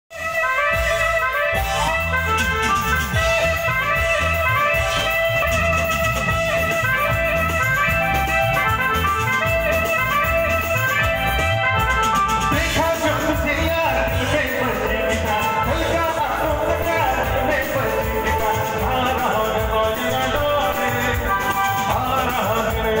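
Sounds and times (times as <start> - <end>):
live band playing upbeat music: 0.1 - 23.0.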